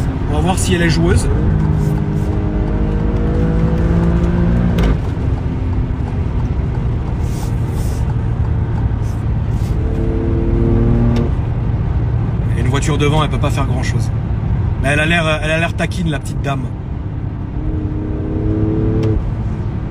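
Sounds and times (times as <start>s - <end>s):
car engine accelerating: 0.0s - 15.1s, 16.8s - 19.9s.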